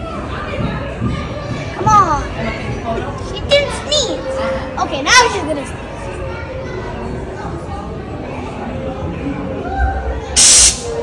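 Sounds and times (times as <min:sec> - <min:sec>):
sneeze through speakers: 0:10.4 - 0:11.0.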